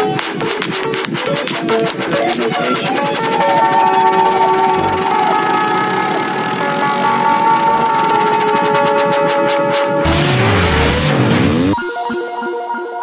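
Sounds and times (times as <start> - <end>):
sustained synth chords: 10.0 - 12.5.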